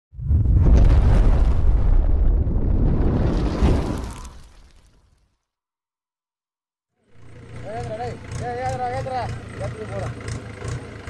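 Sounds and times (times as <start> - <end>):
deep rumbling flames: 0.1 - 5.0.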